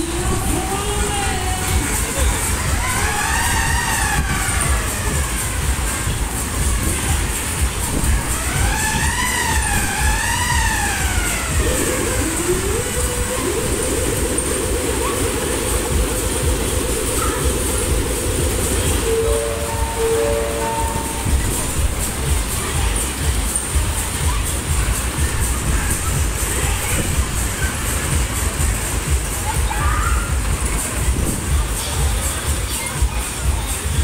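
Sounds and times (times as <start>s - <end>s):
low rumble: 0.0s - 31.6s
siren-like wails: 2.7s - 4.9s, 8.4s - 15.0s, 19.0s - 21.4s
fast warbling tone: 7.9s - 22.3s.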